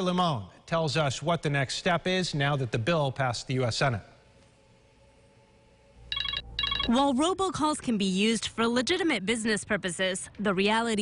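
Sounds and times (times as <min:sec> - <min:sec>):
electronic ringtone trilling: 0:06.1 - 0:07.1.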